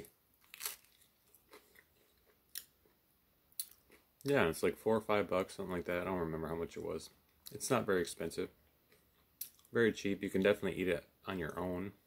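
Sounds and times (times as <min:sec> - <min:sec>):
chewing crispy pizza: 0:00.4 - 0:03.0.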